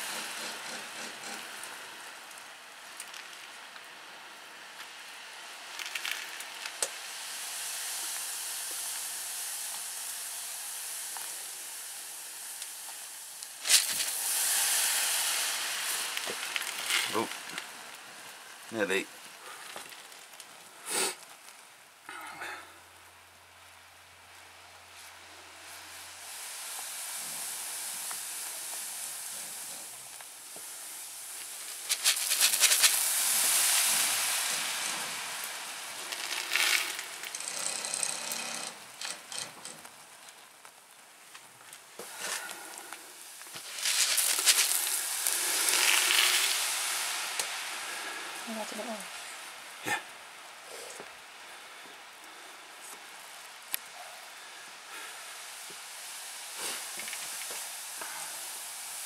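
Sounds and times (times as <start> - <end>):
liquid fizzing and sizzling in a pan: 0.0 - 22.1, 22.7 - 59.0.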